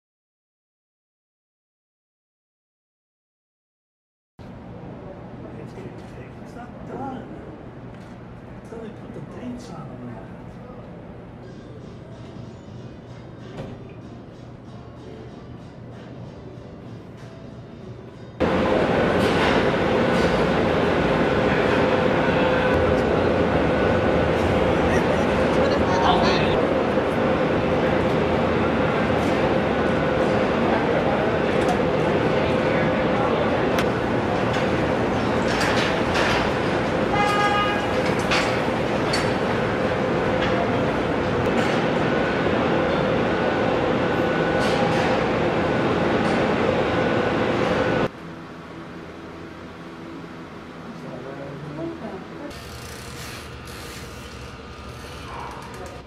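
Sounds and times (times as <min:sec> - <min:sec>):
factory machinery din: 0:18.4 - 0:48.1.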